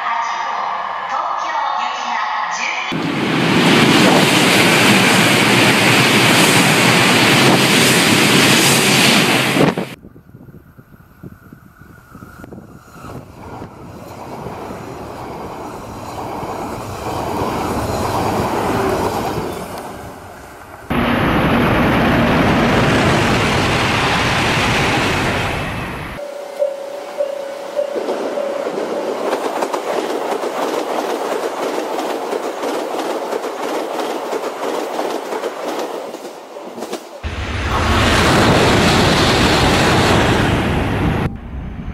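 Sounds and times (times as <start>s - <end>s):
train wheels clattering on track: 27.8s - 40.6s.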